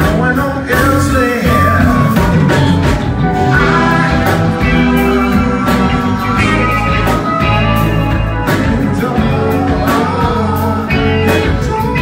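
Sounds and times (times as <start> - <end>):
lead singer singing: 0.0 - 12.0
live funk band playing: 0.0 - 12.0.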